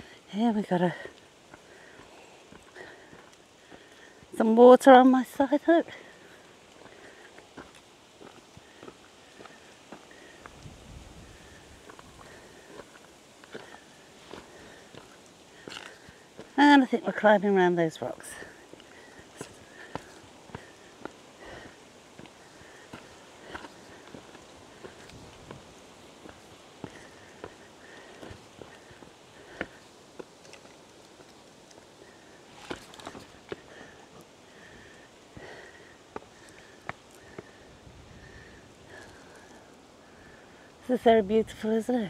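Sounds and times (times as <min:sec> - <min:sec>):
footsteps on rocky ground: 0:00.0 - 0:04.6, 0:05.3 - 0:37.6.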